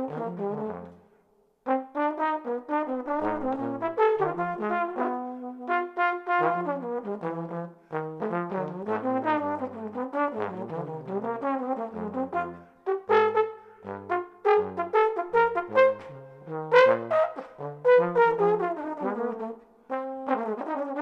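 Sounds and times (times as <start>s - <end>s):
trombones playing blues: 0.0s - 1.0s, 1.6s - 21.0s.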